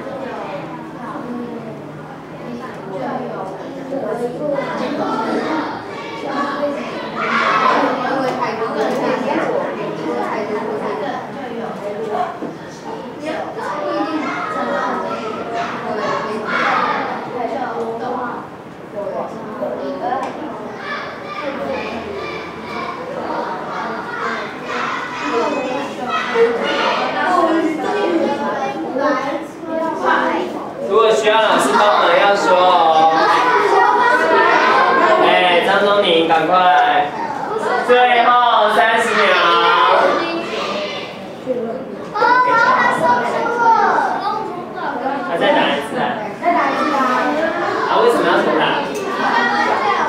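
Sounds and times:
children chattering: 0.0s - 50.0s.

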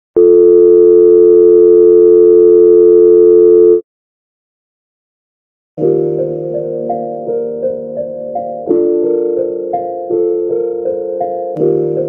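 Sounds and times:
telephone dial tone: 0.2s - 3.8s.

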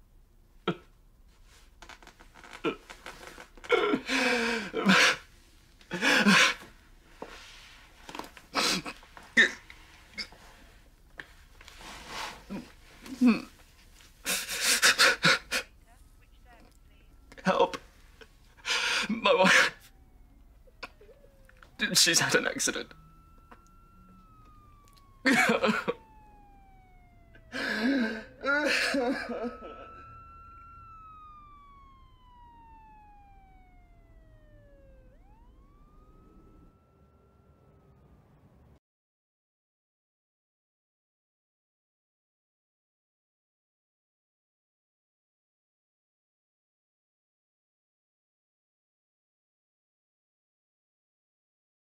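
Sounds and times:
faint siren wailing: 1.5s - 38.8s
man whimpering: 3.6s - 5.2s, 5.9s - 6.6s, 12.5s - 13.6s, 18.6s - 19.8s, 27.5s - 29.9s
man sobbing: 3.6s - 5.3s, 5.9s - 6.7s, 8.5s - 9.6s, 12.5s - 13.6s, 14.2s - 15.8s, 17.3s - 19.9s, 25.2s - 26.0s, 27.4s - 30.1s.

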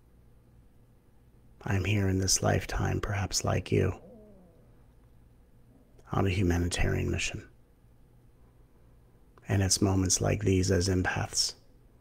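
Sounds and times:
faint low hum: 0.0s - 12.0s
man's voice: 6.1s - 7.4s.

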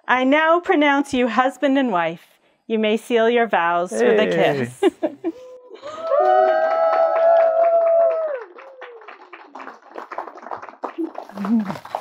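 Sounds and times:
voices cheering: 5.6s - 9.7s
people clapping: 5.8s - 12.0s.

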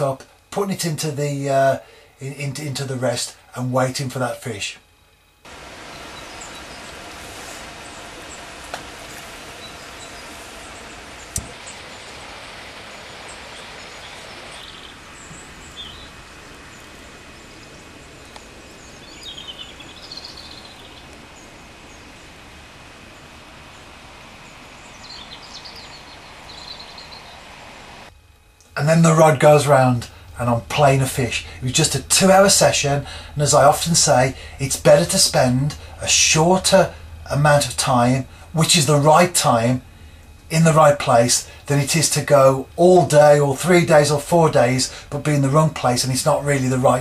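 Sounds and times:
outdoor background noise: 0.0s - 47.0s
small birds chirping: 5.5s - 28.1s.

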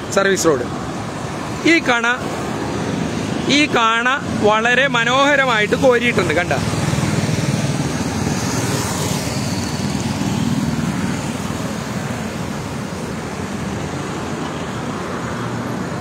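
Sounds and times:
highway traffic passing: 0.0s - 16.0s.

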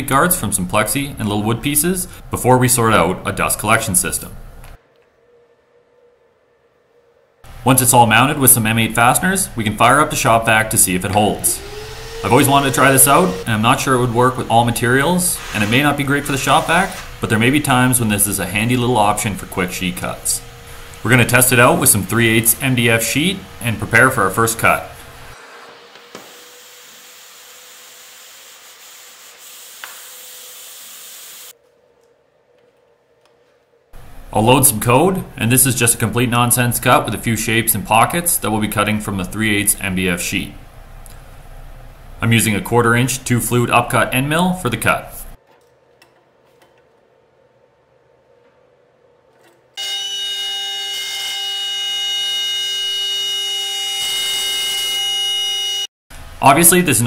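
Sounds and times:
shop vac suction hiss: 8.6s - 31.5s
router spindle whine: 11.0s - 22.6s.

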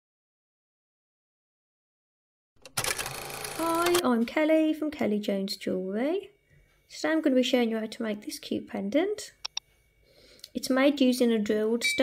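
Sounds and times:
click: 9.4s - 9.6s.

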